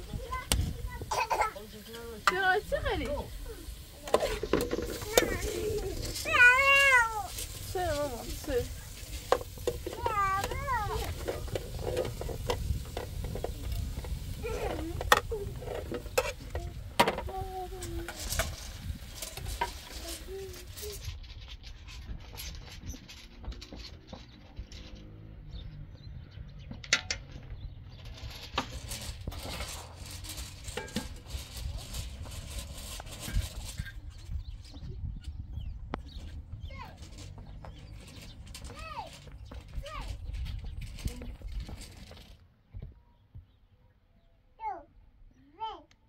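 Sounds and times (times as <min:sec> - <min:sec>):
vegetables frying: 0:00.0 - 0:20.8.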